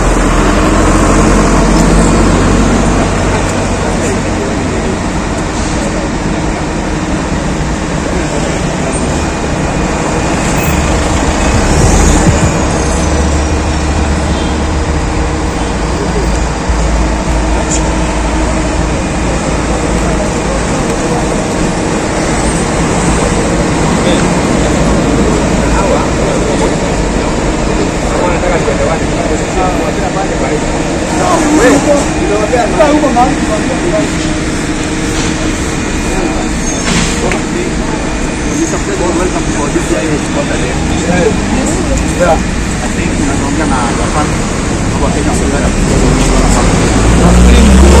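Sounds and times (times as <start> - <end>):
people talking indistinctly: 0.0 - 48.0
traffic noise: 0.0 - 48.0
deep low rumble: 6.3 - 28.1.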